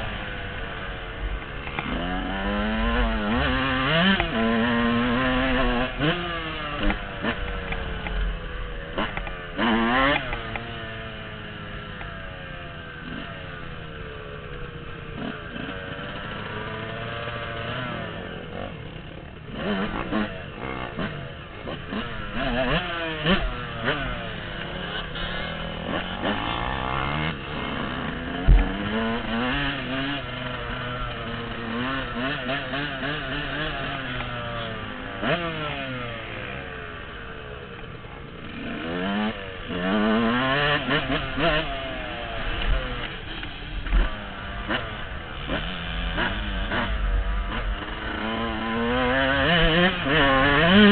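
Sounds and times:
dirt bike engine revving: 0.0s - 50.9s.

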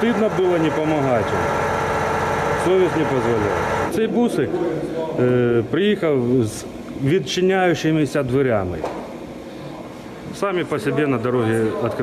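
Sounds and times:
mechanical hum with tones: 0.0s - 12.0s.

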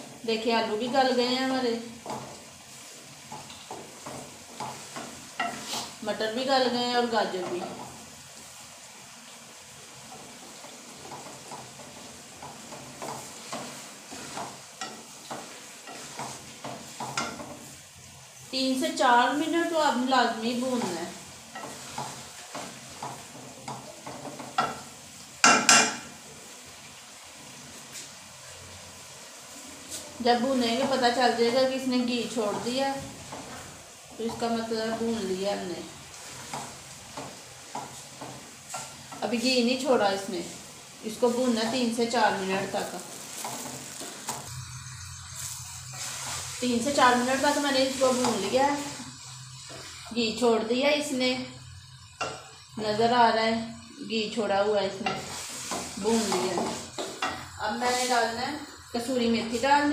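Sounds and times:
vegetables sizzling: 0.0s - 59.9s
spatula scraping a pan: 0.8s - 8.0s, 10.0s - 26.2s, 29.8s - 53.8s, 54.4s - 59.9s.

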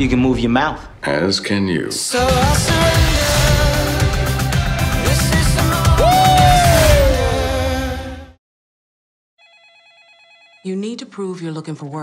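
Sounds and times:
music: 2.2s - 8.4s
telephone ringing: 9.4s - 10.7s.

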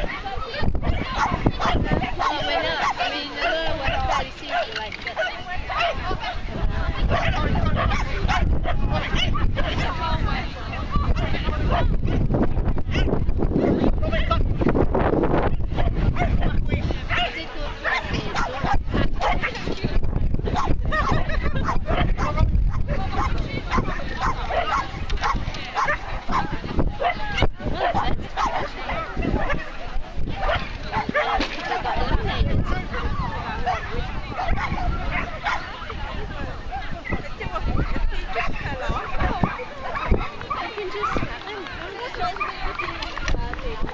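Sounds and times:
people talking: 0.0s - 12.8s, 15.3s - 43.9s
wind rumble on microphone: 0.0s - 43.9s
dog barking: 0.5s - 6.4s, 7.1s - 9.8s, 12.9s - 13.1s, 17.1s - 19.5s, 20.6s - 29.6s, 30.4s - 31.4s, 33.6s - 35.7s, 38.4s - 41.2s.

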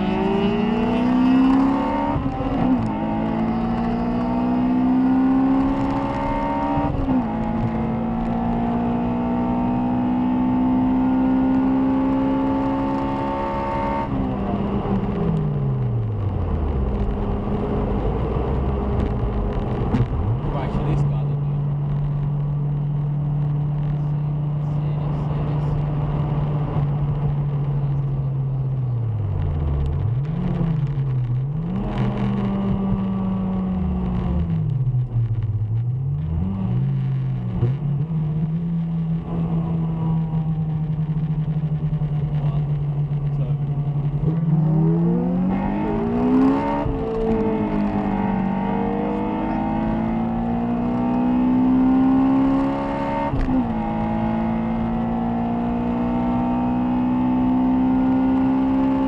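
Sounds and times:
car engine revving: 0.0s - 59.0s.

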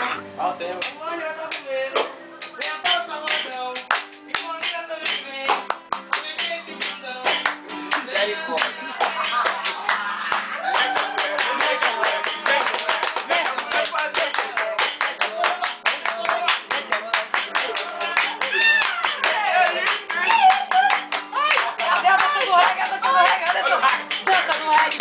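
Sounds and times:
acoustic guitar strummed: 0.0s - 25.0s
voices singing and calling out: 0.8s - 25.0s
fast hand clapping: 3.3s - 6.5s, 7.3s - 25.0s.

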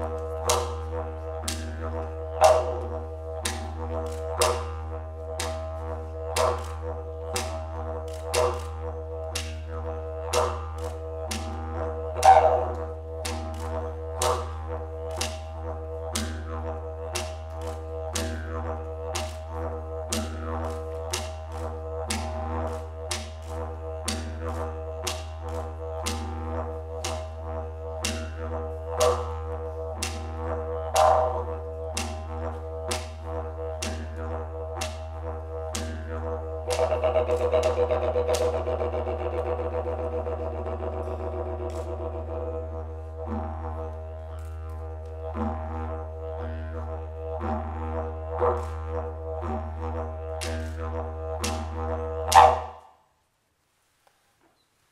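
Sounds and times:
didgeridoo low drone: 0.0s - 52.8s.

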